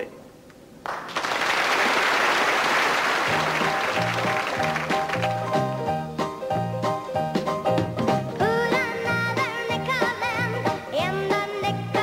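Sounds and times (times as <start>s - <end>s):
audience applauding: 0.8s - 5.8s.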